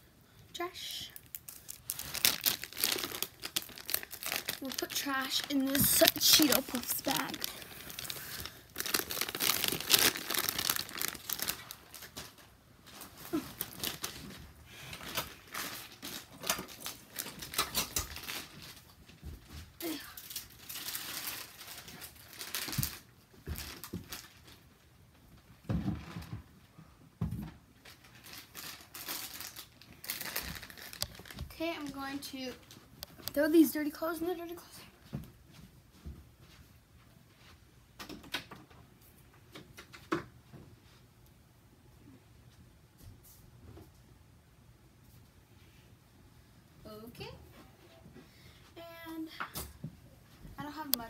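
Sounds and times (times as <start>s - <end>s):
plastic bag crinkling: 1.0s - 19.0s, 19.8s - 24.7s, 27.8s - 33.5s.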